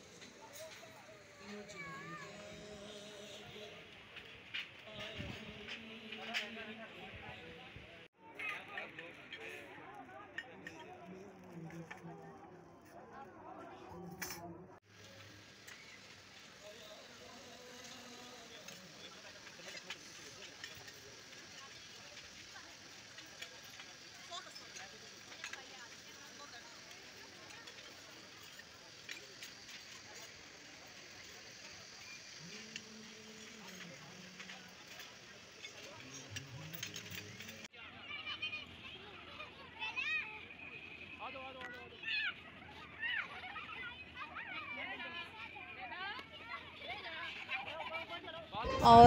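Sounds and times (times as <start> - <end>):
murmur of voices: 0.0 - 15.3, 16.5 - 39.9, 44.2 - 49.0.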